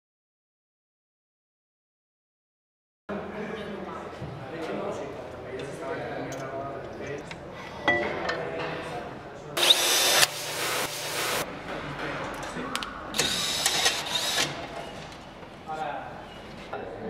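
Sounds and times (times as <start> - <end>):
cordless drill whining: 9.6 - 10.6.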